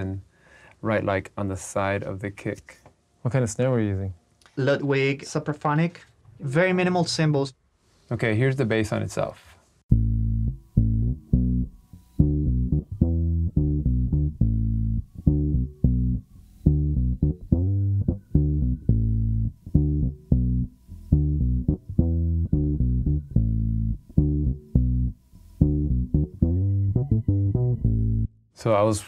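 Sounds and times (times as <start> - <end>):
electric bass plucked notes: 9.9 - 28.4.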